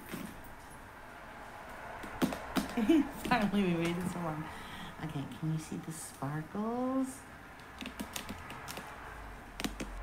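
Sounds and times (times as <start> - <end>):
clicks on hard plastic: 7.6 - 10.0.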